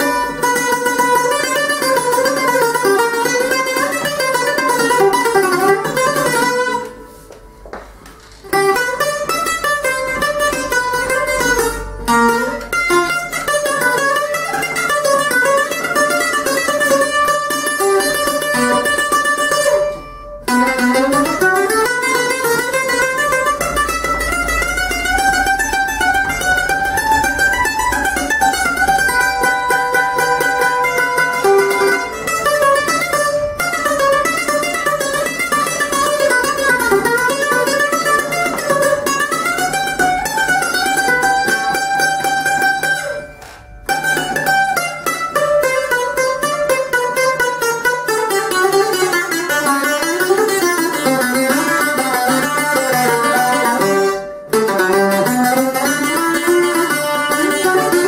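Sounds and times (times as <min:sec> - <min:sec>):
bouzouki played with a pick: 0:00.0 - 0:58.0.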